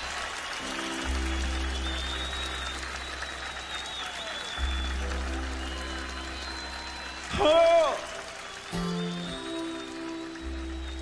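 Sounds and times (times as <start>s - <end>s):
crowd applause: 0.0s - 11.0s.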